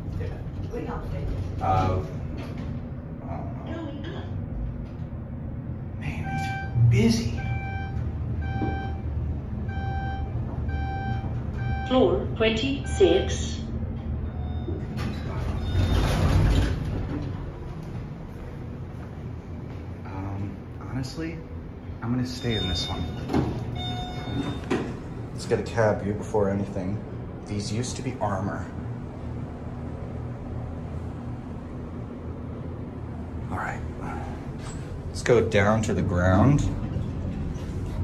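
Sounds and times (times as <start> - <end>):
elevator doors sliding open: 4.4 - 12.2, 12.9 - 18.7, 22.3 - 25.6, 34.0 - 38.0.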